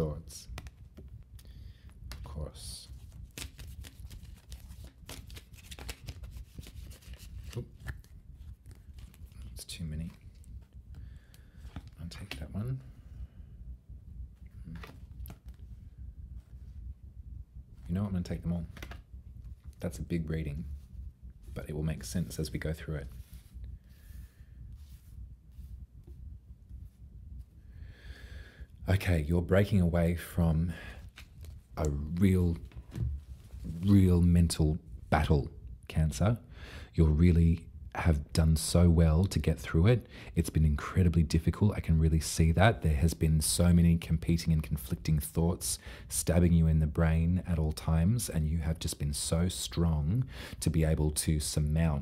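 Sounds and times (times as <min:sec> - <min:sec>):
low room hum: 0:00.0 - 0:52.0
cards shuffled by hand: 0:00.4 - 0:01.2, 0:02.1 - 0:12.5, 0:14.6 - 0:15.8, 0:18.6 - 0:19.0, 0:31.0 - 0:33.9.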